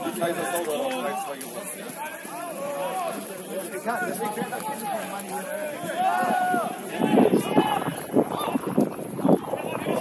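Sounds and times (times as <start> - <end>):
people shouting on a pitch: 0.0 - 10.0.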